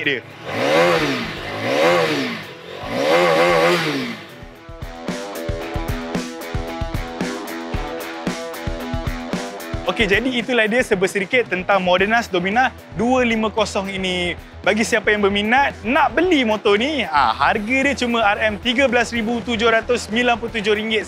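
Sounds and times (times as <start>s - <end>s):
motorcycle engine revving: 0.0s - 9.9s
background music with steady beat: 0.0s - 21.0s.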